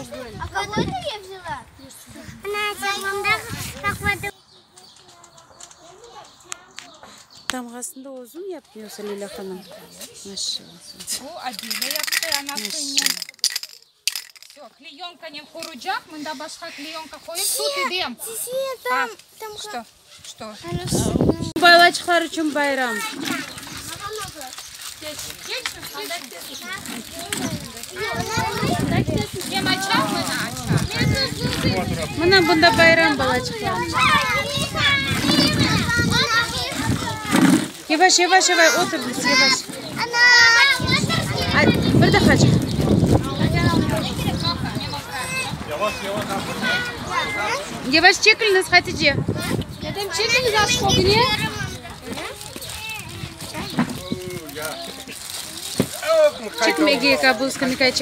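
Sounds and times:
children chattering and calling out: 0.0s - 58.0s
plastic film crackling: 21.8s - 33.2s, 51.9s - 58.0s.

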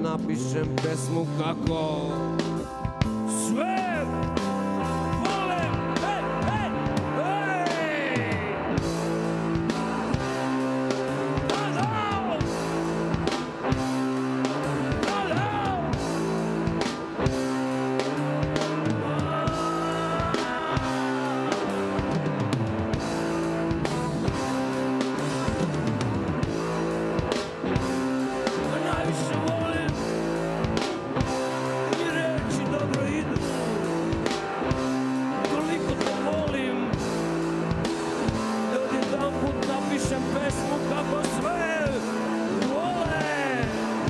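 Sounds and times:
electric guitar: 0.0s - 44.0s
rock band playing live: 0.0s - 44.0s
drum beat: 0.6s - 44.0s.

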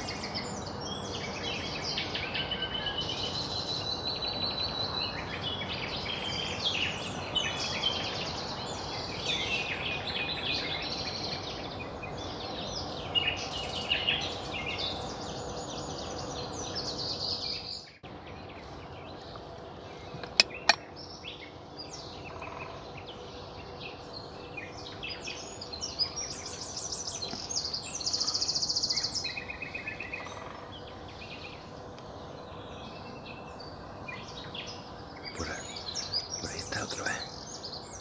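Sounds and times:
songbirds singing and calling: 0.0s - 38.0s
loud rapid bird trill: 19.9s - 38.0s.

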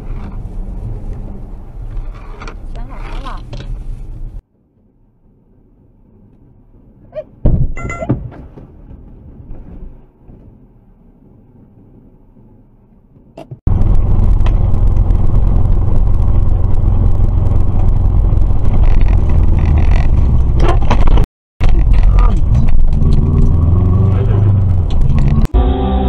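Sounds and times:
car engine and road rumble: 0.0s - 26.0s.

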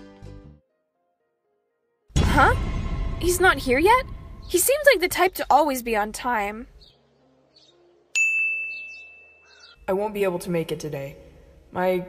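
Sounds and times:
phone notification ding: 8.2s - 9.5s.

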